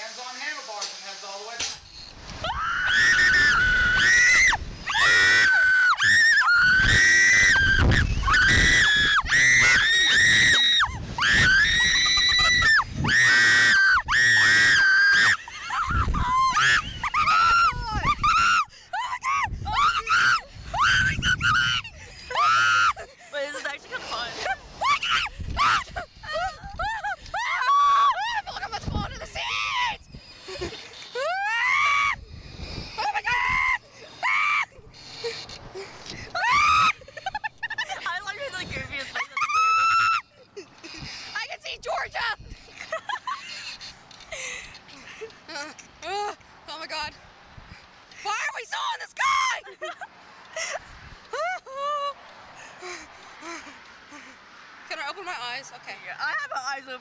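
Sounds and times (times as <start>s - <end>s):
children screaming: 2.0s - 45.3s, 48.1s - 54.4s
laughing screams: 2.4s - 45.3s.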